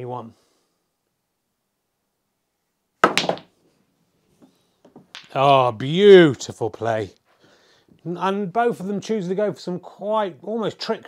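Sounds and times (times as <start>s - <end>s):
cue striking ball: 3.0s - 3.5s
snooker balls clacking: 3.0s - 3.5s, 4.9s - 5.4s.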